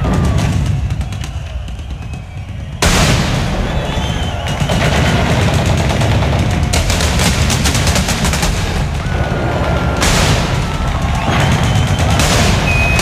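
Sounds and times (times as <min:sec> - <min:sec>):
heavy booming rumble: 0:00.0 - 0:13.0
loud blast: 0:00.0 - 0:13.0
machine-gun fire: 0:00.0 - 0:13.0.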